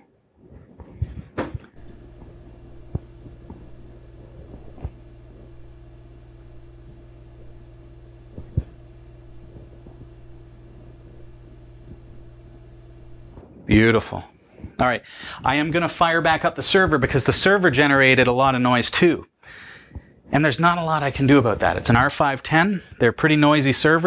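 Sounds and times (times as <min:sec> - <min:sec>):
fan hum: 0:00.8 - 0:24.0
steady tone: 0:01.6 - 0:14.0.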